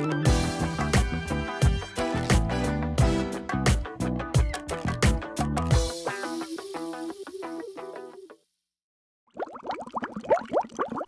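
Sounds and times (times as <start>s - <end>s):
rising underwater bubble blips: 9.3s - 11.0s.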